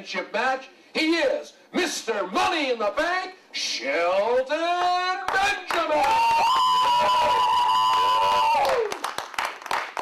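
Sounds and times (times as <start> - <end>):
audience clapping: 5.3 - 10.0
high held cheering shout: 5.9 - 9.1.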